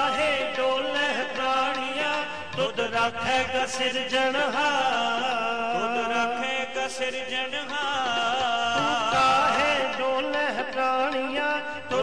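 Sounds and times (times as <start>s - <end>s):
harmonium: 0.0s - 12.0s.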